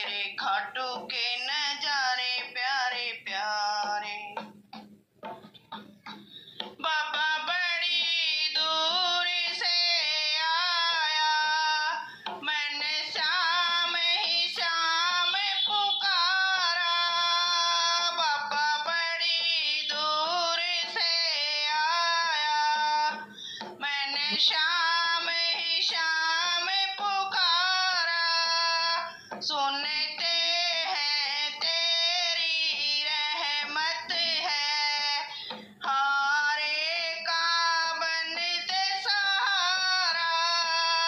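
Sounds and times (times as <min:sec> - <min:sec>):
woman singing devotional song: 0:00.0 - 0:04.6, 0:05.8 - 0:41.0.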